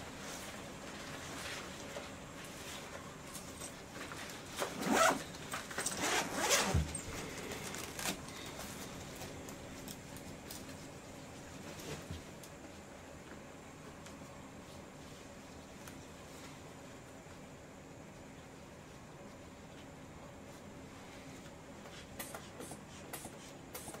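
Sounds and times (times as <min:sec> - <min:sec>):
clothing rustling: 0:00.1 - 0:12.1.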